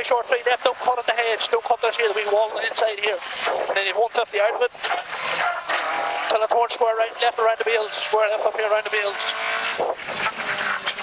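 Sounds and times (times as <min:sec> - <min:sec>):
car engine at high revs: 0:00.3 - 0:11.0.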